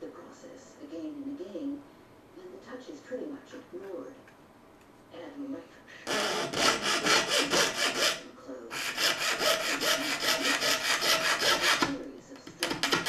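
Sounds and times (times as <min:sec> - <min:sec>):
hand drill scraping metal: 0:06.1 - 0:12.0.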